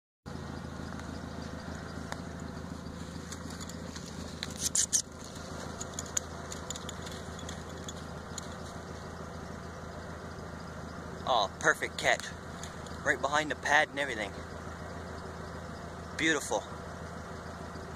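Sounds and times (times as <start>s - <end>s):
low hum: 0.3s - 17.9s
steel trap chain clinking: 3.2s - 8.9s.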